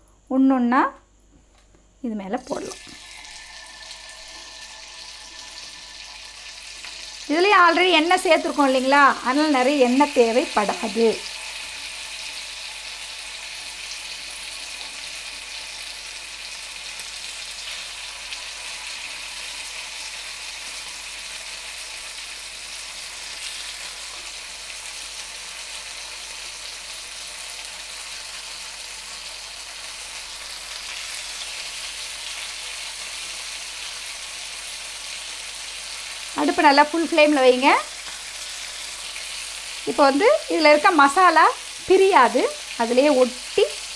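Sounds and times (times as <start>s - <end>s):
chicken frying in hot oil: 2.5s - 43.9s.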